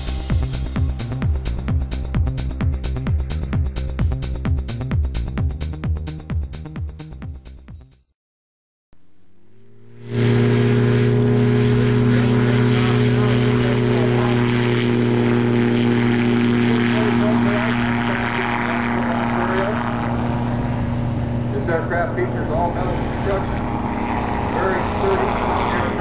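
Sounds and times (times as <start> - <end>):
ultralight engine and propeller: 0.0 - 7.7, 9.0 - 26.0.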